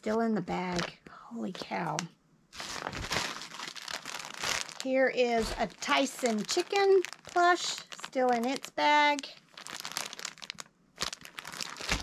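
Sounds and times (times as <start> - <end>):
plastic bag crinkling: 2.5 - 12.0.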